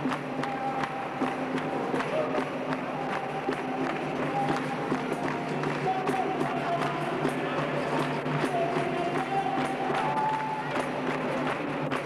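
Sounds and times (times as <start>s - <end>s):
people clapping in rhythm: 0.0s - 12.0s.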